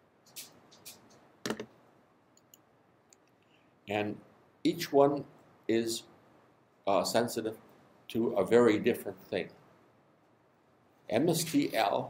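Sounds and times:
soft clicks: 2.3s - 3.5s.

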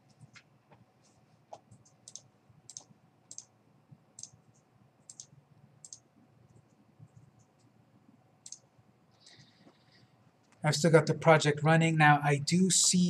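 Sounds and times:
computer mouse clicks: 1.5s - 3.5s, 4.2s - 7.8s, 8.4s - 9.8s.

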